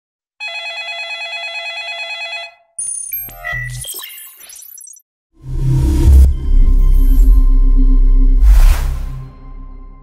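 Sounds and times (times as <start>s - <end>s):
electronic sound effects: 2.8s - 7.6s.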